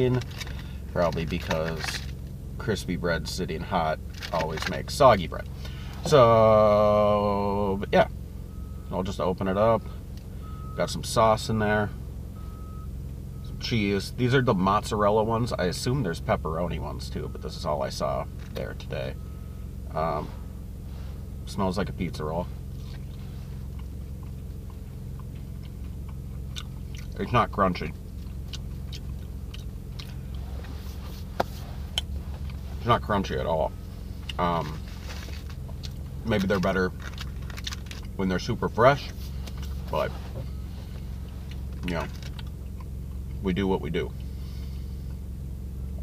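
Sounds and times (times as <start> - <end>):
low hum inside a car: 0.0 - 46.0
person chewing soft food: 22.7 - 27.2, 28.0 - 32.6, 33.9 - 36.2.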